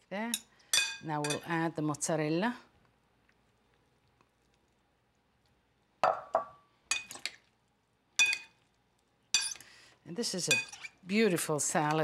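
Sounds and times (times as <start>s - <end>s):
cutlery clinking on glass bowl: 8.2s - 8.5s, 9.4s - 9.6s.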